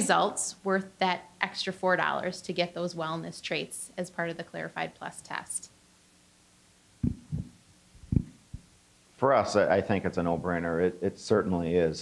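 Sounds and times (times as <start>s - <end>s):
microphone handling thumps: 7.0s - 8.8s.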